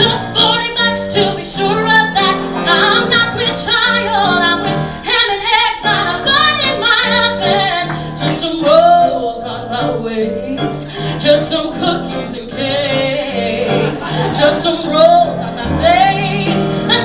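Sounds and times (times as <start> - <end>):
cello: 0.0 - 5.0, 5.9 - 17.0
piano: 0.0 - 17.0
woman singing into a microphone: 0.0 - 17.0.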